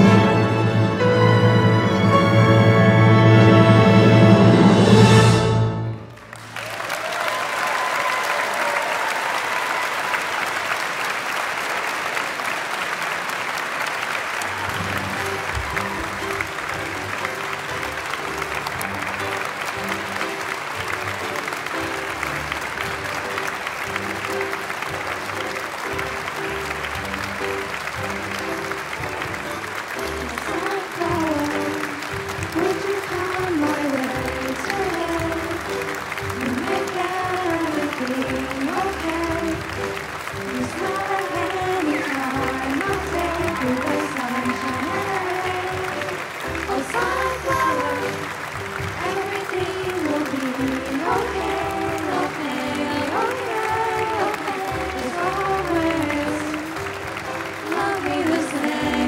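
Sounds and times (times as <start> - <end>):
audience applauding: 4.6 - 59.0.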